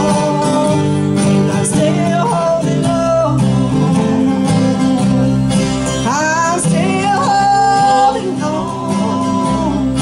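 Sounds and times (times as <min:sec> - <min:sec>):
person singing gospel song: 0:00.0 - 0:10.0
strummed acoustic guitars: 0:00.0 - 0:10.0.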